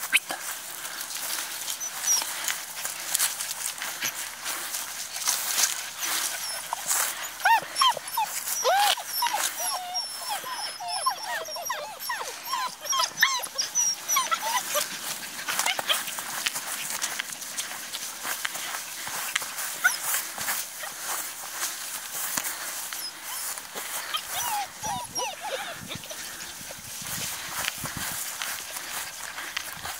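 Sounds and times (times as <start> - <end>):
dogs scuffling in grass: 0.0 - 10.4, 11.2 - 29.9
puppies whining and yipping: 0.0 - 29.9.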